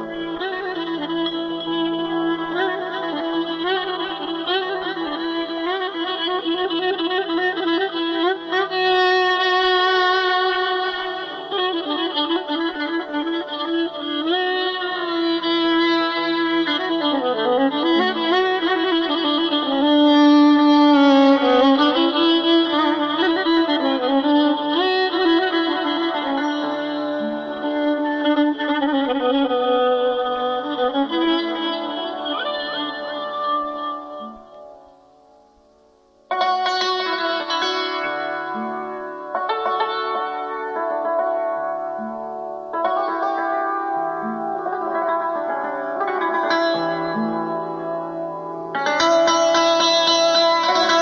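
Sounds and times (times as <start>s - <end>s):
violin melody: 0.0s - 34.9s, 36.3s - 51.0s.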